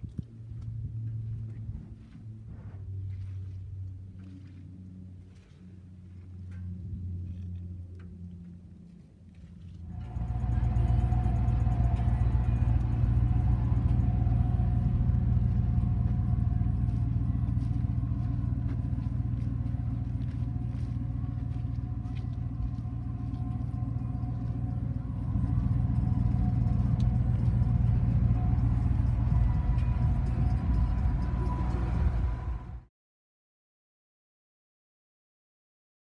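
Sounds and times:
pickup engine rumbling: 9.8 - 32.8.

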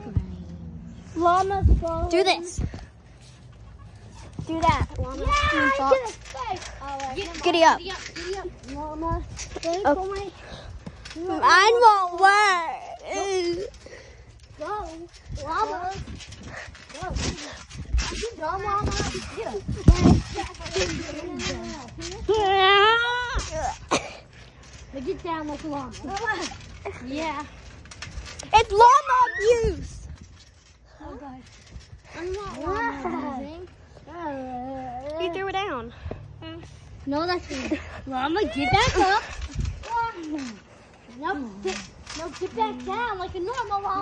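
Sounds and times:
trampoline bouncing thumps: 0.0 - 34.4, 37.0 - 44.0
child shouting: 28.6 - 29.8.

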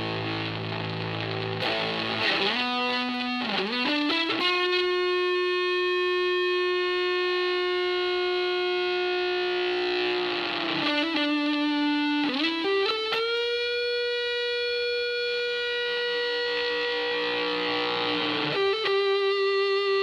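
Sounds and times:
fuzzed electric guitar notes: 0.0 - 20.0.

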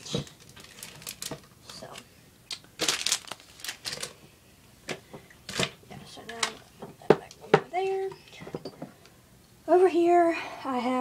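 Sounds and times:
crinkling rustles: 0.0 - 4.3.

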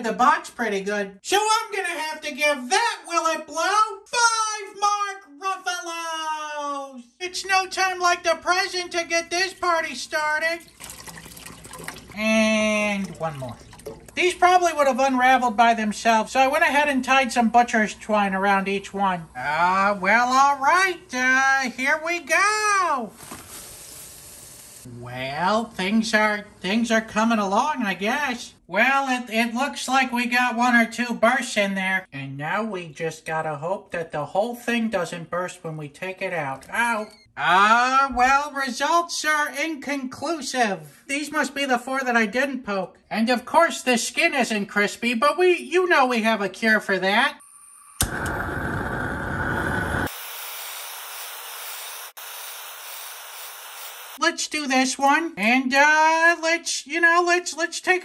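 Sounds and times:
liquid boiling and bubbling: 10.6 - 14.2, 47.5 - 51.6
gas torch flame hissing: 23.3 - 24.9, 47.5 - 54.2.

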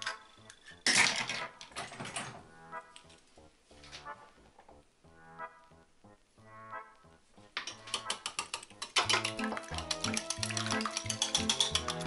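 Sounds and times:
fork beating egg in bowl: 7.6 - 12.0.

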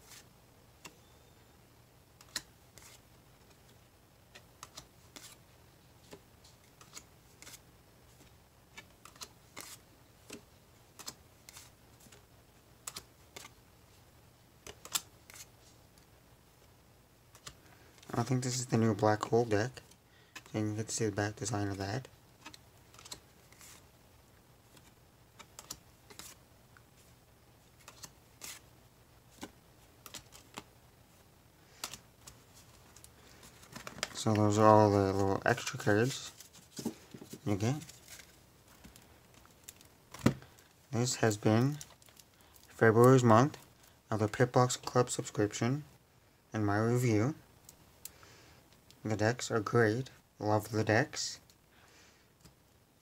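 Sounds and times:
playing cards shuffled by hand: 6.1 - 7.6, 8.2 - 10.4, 24.7 - 26.4, 27.8 - 28.6.

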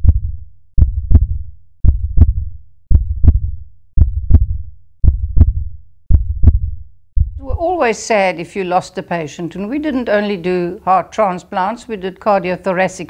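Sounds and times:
heartbeat thumps: 0.0 - 7.7.

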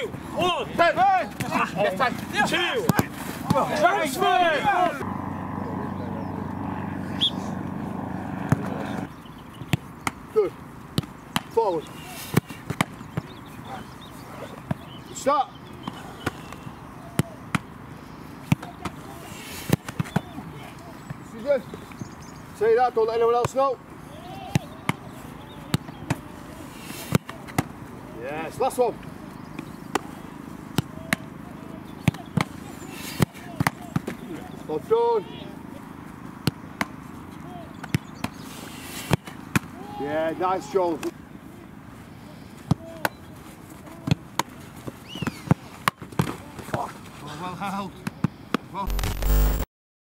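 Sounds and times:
faint distant voices: 0.0 - 10.7, 11.4 - 45.7
football hitting goalkeeper gloves: 1.2 - 1.7, 2.8 - 3.9, 12.3 - 13.4, 32.0 - 32.6
football thuds: 2.8 - 3.9.

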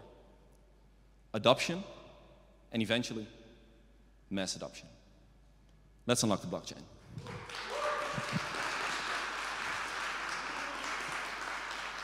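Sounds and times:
audience applauding: 7.2 - 12.0.

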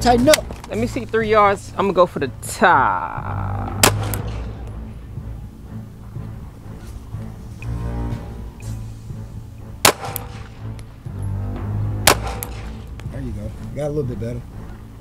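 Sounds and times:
background music: 0.0 - 15.0
pistol shot: 3.8 - 4.6, 9.8 - 10.6, 12.0 - 12.9.

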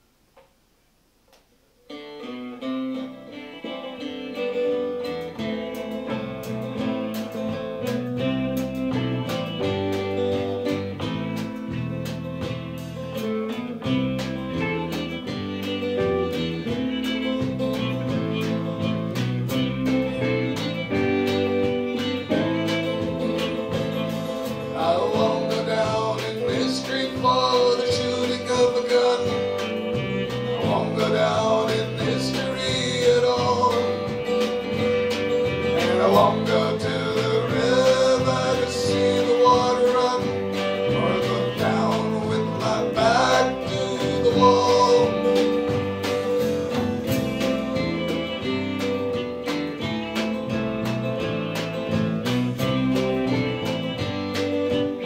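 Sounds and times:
folk-rock band playing: 1.9 - 55.0
man singing: 24.4 - 34.4, 35.6 - 48.5.

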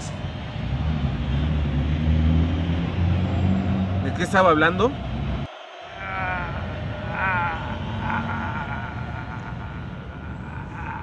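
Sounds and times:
wavering bleat-like cries: 5.9 - 11.0.

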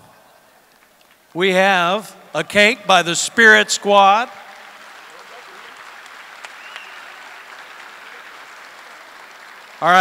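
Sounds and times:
audience applauding: 3.5 - 10.0.

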